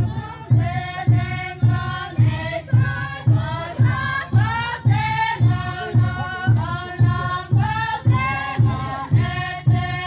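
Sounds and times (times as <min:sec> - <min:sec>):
group singing folk song: 0:00.0 - 0:10.0
steady low beat: 0:00.0 - 0:10.0.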